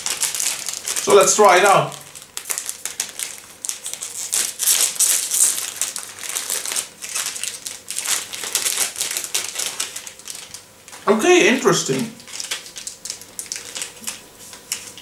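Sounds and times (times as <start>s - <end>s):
candy wrapper crinkling: 0.0s - 15.0s.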